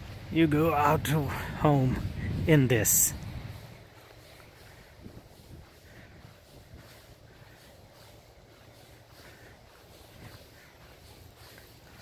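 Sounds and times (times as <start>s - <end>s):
footsteps crunching in snow: 0.0s - 12.0s
steady low rumble: 0.0s - 12.0s.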